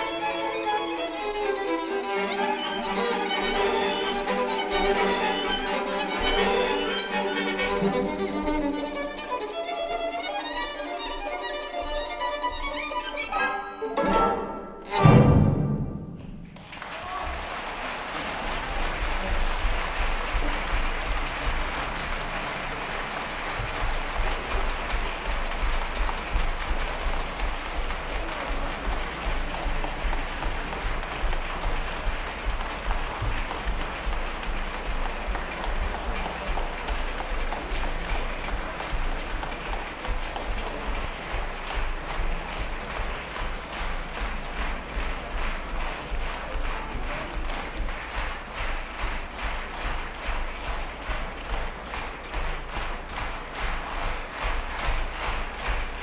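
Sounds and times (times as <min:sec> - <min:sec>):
audience applauding: 0:00.0 - 0:13.1, 0:16.2 - 0:56.0
rhythmic clapping in unison: 0:00.0 - 0:13.1, 0:16.2 - 0:56.0.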